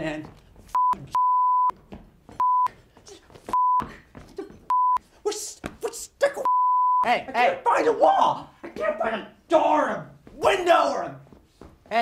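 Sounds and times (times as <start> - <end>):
censor bleeps: 0.8 - 1.7, 2.4 - 2.7, 3.6 - 3.8, 4.7 - 5.0, 6.4 - 7.1
man laughing and shouting: 5.3 - 9.4.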